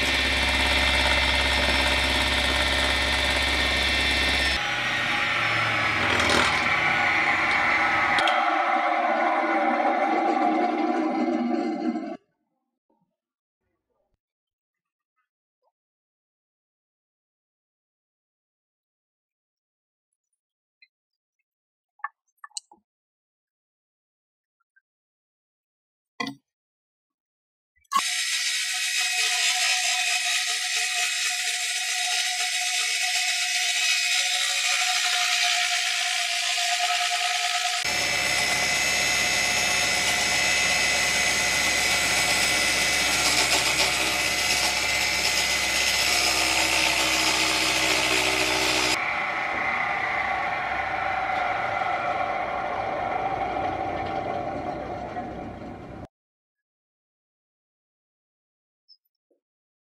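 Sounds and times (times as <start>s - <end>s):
table saw ripping plywood: 4.6s - 8.3s.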